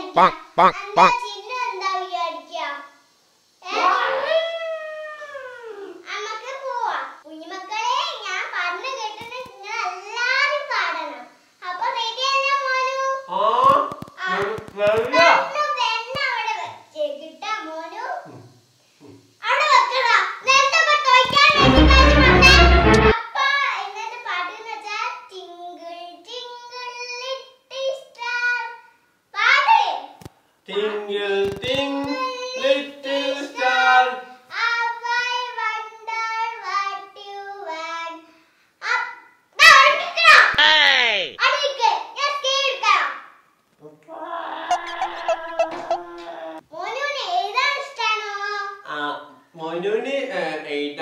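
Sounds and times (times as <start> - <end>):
girl's long yawn-like call: 3.8 - 6.0
loud burst with heavy bass: 21.4 - 23.2
girl singing: 44.7 - 46.6.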